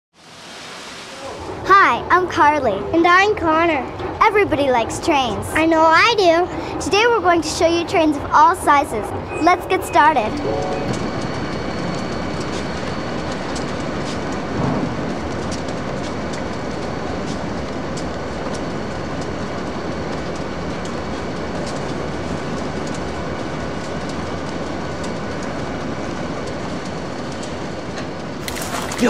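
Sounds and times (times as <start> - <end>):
train wheels rolling: 10.6 - 28.4.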